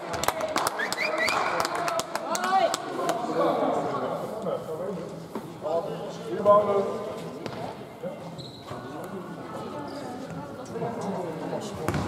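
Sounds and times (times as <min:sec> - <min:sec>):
sneakers squeaking on court: 0:08.3 - 0:08.8.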